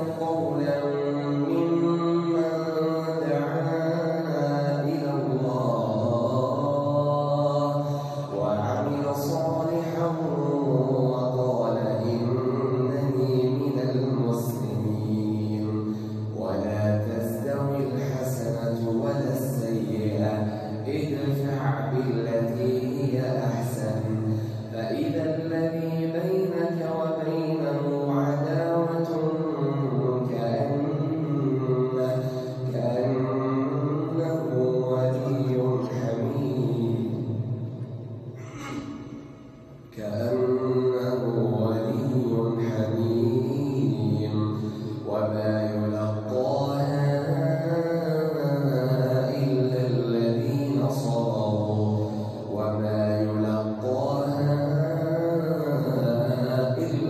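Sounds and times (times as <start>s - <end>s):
man chanting into a microphone: 0.0s - 57.0s.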